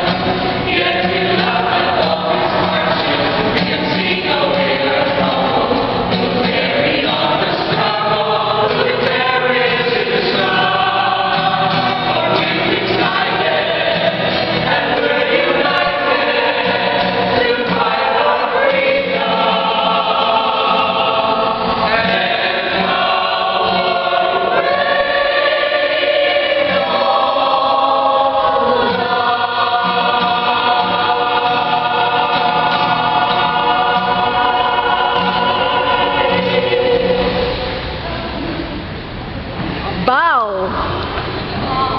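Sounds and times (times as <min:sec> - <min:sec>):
mixed choir singing: 0:00.0 - 0:38.5
acoustic guitar: 0:00.0 - 0:41.9.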